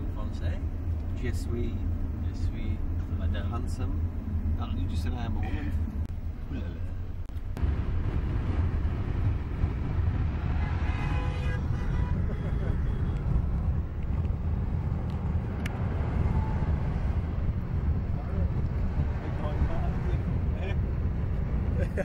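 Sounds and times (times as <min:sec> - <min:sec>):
car engine rumble: 0:00.0 - 0:22.0
road noise: 0:00.0 - 0:22.0.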